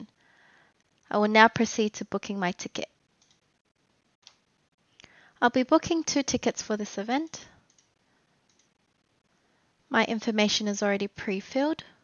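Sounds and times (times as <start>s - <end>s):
person speaking: 1.1s - 3.0s, 5.4s - 7.5s, 9.9s - 11.9s
computer mouse click: 3.2s - 3.4s, 4.2s - 4.4s, 7.7s - 7.9s, 8.5s - 8.7s.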